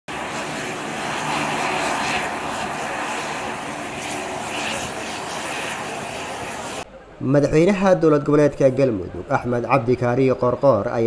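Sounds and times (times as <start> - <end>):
turboprop plane engines droning: 0.1 - 7.2.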